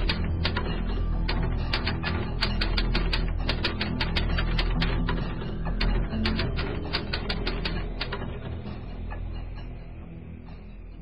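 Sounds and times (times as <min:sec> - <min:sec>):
background music: 0:00.0 - 0:11.0
typewriter keys clacking: 0:05.8 - 0:08.3.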